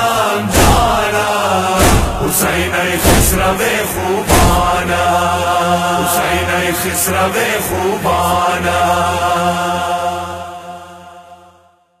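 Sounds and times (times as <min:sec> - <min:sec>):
men chanting a lament: 0:00.0 - 0:11.5.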